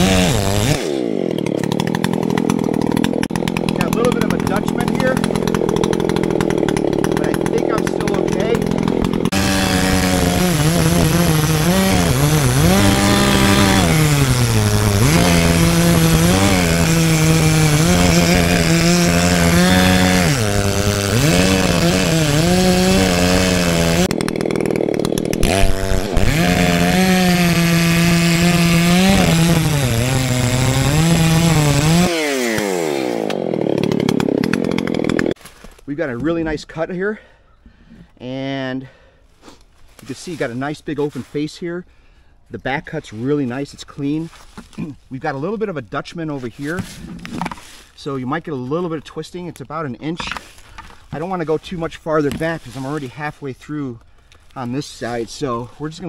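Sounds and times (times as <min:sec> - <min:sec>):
chainsaw cutting tree trunk: 0:00.0 - 0:35.8, 0:46.6 - 0:49.0, 0:49.6 - 0:53.4.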